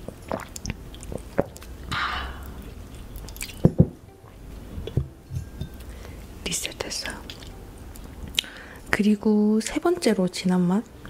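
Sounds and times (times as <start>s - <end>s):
swallowing gulps: 0.0s - 3.6s
wet mouth click: 3.2s - 3.6s.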